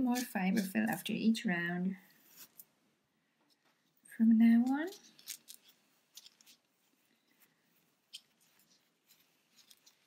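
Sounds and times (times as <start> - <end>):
stuffing rustling and crackling: 3.5 - 10.0.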